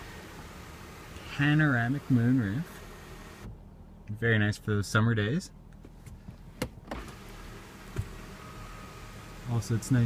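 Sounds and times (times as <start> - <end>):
electric motor hum: 0.0 - 3.6, 7.0 - 10.0.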